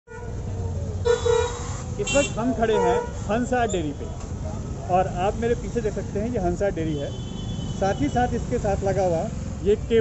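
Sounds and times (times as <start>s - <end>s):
vehicle horn honking: 1.1s - 3.2s, 7.0s - 8.2s.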